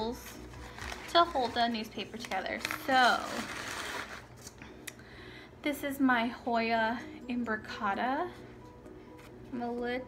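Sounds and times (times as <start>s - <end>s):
newspaper wrapping rustling: 0.0s - 4.6s.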